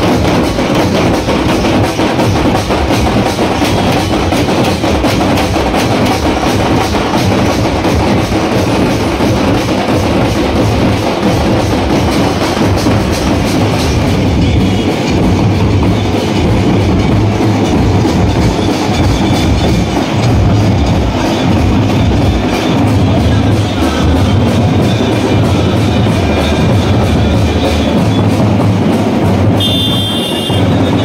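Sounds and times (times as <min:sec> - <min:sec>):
street drum band: 0:00.0 - 0:31.0.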